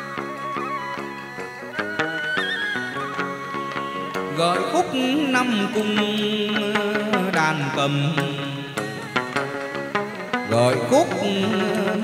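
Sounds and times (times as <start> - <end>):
sliding pitch melody: 0.0 - 12.0.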